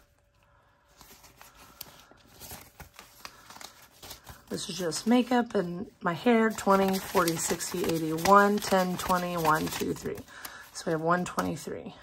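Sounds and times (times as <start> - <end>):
banknotes rustling: 0.0 - 5.5, 6.2 - 11.6.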